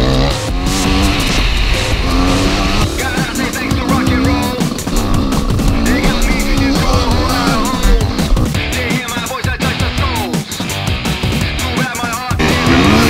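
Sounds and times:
motorcycle engine revving: 0.0 - 10.2, 12.4 - 13.0
music with steady beat: 0.0 - 13.0.

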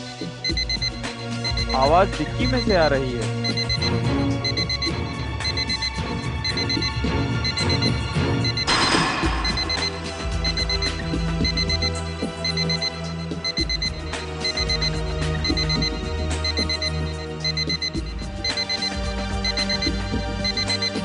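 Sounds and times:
dramatic music with low drone: 0.0 - 21.0
electronic alarm beeping: 0.0 - 21.0.

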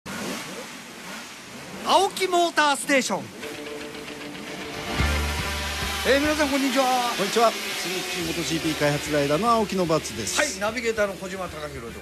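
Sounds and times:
vehicle engine: 3.4 - 12.0.

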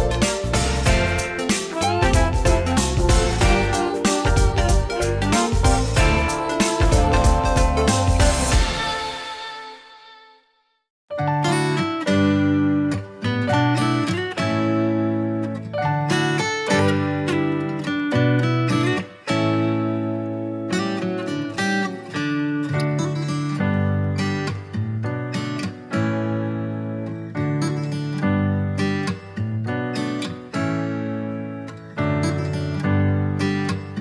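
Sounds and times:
acoustic guitar playing: 0.0 - 10.0, 11.1 - 34.0.

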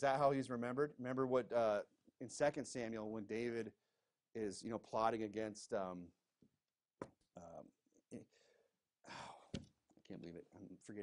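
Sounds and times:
breathy sigh: 8.3 - 9.6.

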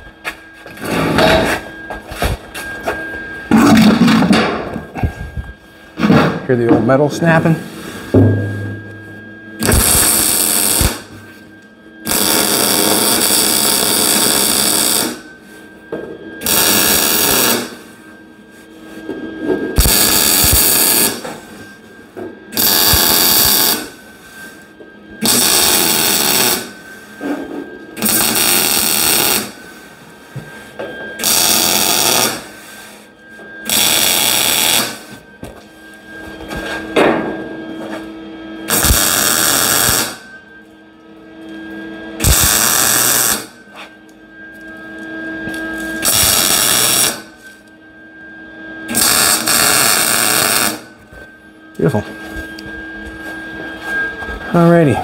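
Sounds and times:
welding arc crackling: 9.6 - 11.1, 12.1 - 15.2, 16.4 - 17.8, 19.8 - 21.2, 22.6 - 23.9, 25.2 - 26.7, 28.0 - 29.6, 31.2 - 32.5, 33.7 - 35.1, 38.7 - 40.2, 42.2 - 43.5, 46.0 - 47.2, 48.9 - 50.8.

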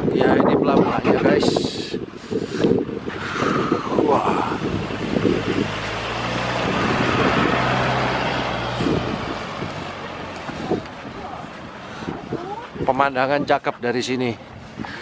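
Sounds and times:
van driving past on cobbles: 4.4 - 11.9.

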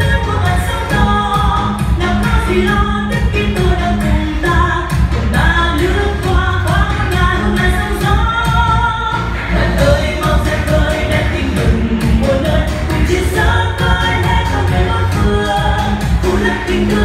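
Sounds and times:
upbeat pop song with singing: 0.0 - 17.0.

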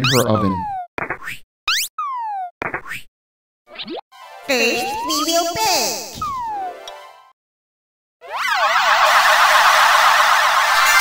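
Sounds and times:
music: 4.2 - 5.1, 6.6 - 7.3.

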